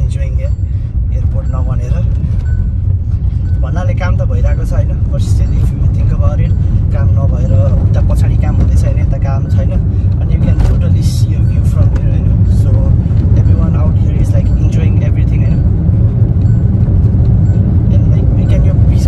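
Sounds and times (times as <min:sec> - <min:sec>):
man talking: 0:00.0 - 0:02.3, 0:03.6 - 0:15.7, 0:17.9 - 0:19.0
car road and engine rumble: 0:00.0 - 0:19.0.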